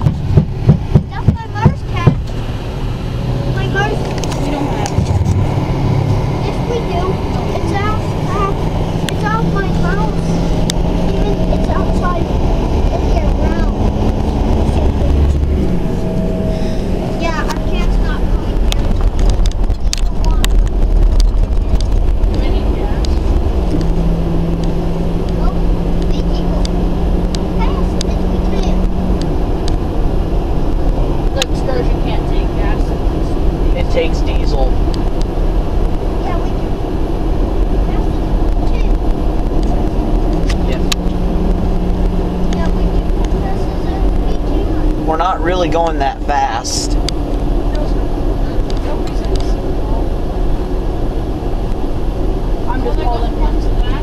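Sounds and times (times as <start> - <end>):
road and engine rumble: 0.0 - 54.0.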